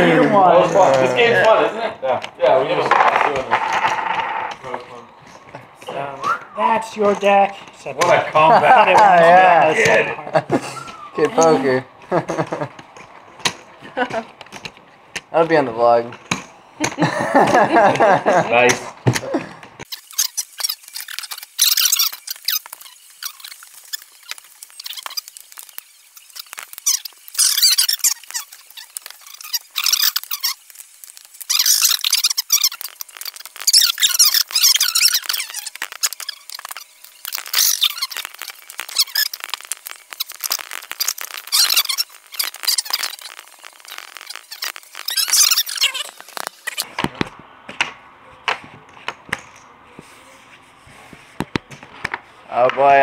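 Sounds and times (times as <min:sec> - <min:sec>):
voices around card table: 0:00.0 - 0:19.9, 0:46.8 - 0:53.0
poker chips clicking: 0:20.0 - 0:46.9.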